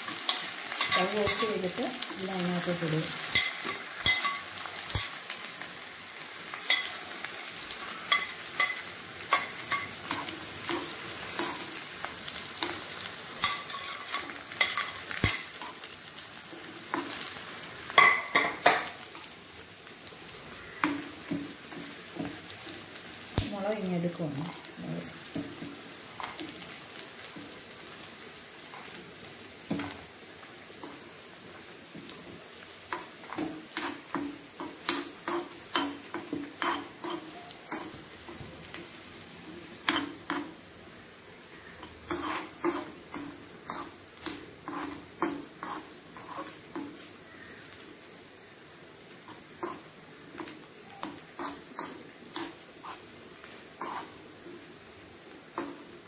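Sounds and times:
food sizzling in oil: 0.0 - 56.0.

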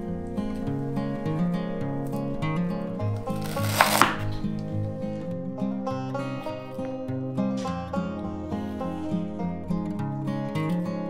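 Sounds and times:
acoustic guitar music: 0.0 - 11.0
knife chopping on wooden board: 3.4 - 4.3.

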